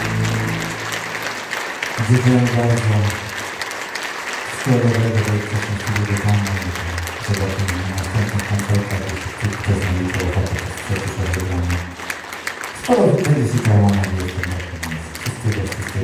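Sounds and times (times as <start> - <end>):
band holding low chords: 0.0 - 1.5
loud sound sliding down in pitch: 0.0 - 1.7
audience applause: 0.0 - 16.0.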